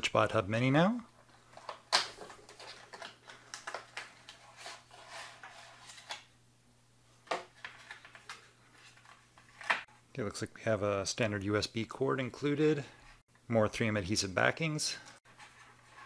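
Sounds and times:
cardboard and plastic packaging handling: 1.2s - 6.3s, 7.2s - 9.9s.

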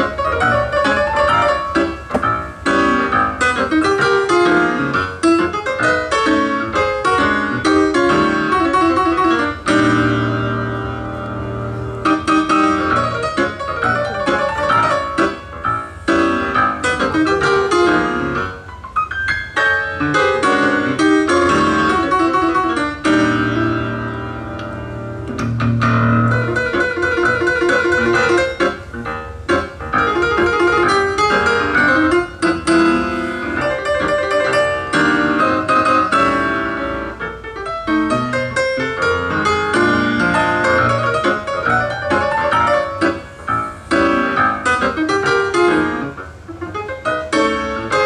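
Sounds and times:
jazz piano: 0.0s - 48.0s.

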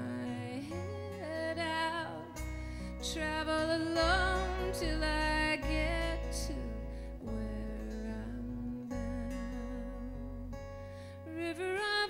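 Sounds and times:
woman singing with vibrato: 0.0s - 10.6s, 11.2s - 12.0s
strummed acoustic guitar: 0.0s - 12.0s
electric bass line: 2.3s - 11.0s.

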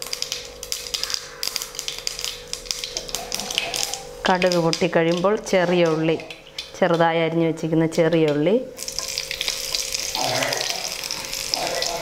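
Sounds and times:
hot oil sizzling and crackling: 0.0s - 12.0s.

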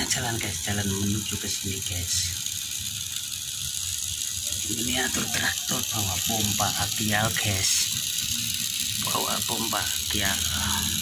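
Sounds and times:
toy tractor motor whirring: 0.0s - 11.0s.

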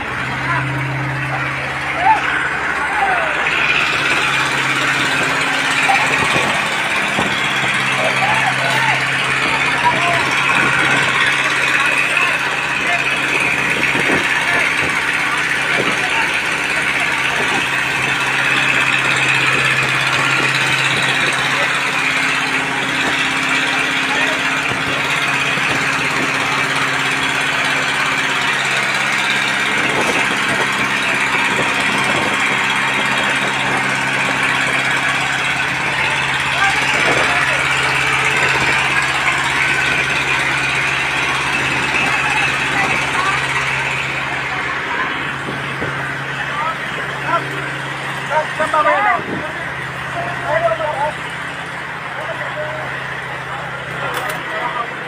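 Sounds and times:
fire engine pump running: 0.0s - 55.0s
indistinct voices: 0.0s - 55.0s.

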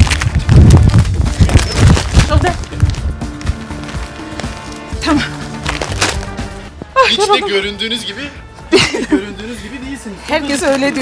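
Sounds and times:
groceries thudding and rustling: 0.0s - 4.8s, 5.5s - 6.5s.

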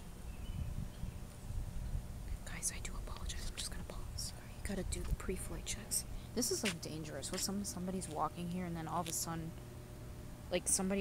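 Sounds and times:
steady low rumble: 0.0s - 11.0s
person whispering: 2.3s - 4.6s.

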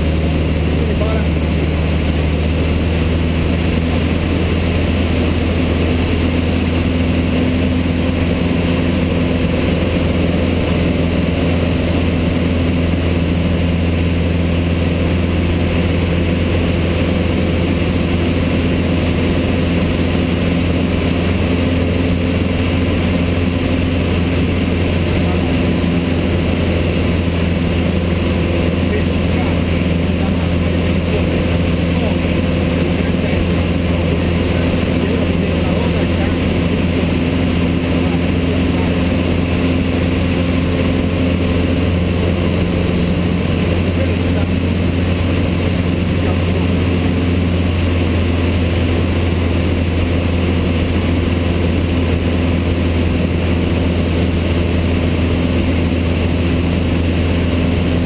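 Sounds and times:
light aircraft engine droning: 0.0s - 58.0s.

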